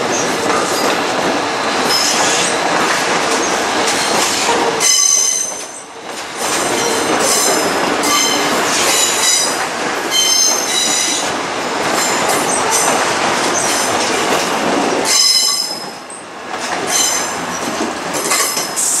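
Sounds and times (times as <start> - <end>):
train wheels rumbling on rails: 0.0 - 19.0
shrill wheel squeals: 4.8 - 5.8, 6.7 - 11.3.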